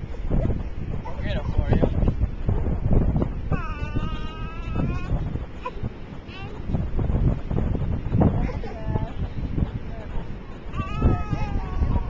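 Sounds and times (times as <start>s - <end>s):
wind rumble on microphone: 0.0s - 12.0s
toddler vocalising: 3.4s - 6.7s, 10.7s - 12.0s.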